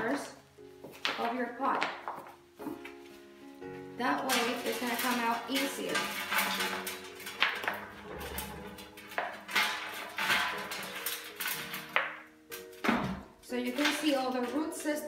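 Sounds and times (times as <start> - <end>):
background music: 0.0 - 15.0
plastic pot crackling and snapping: 0.9 - 3.0.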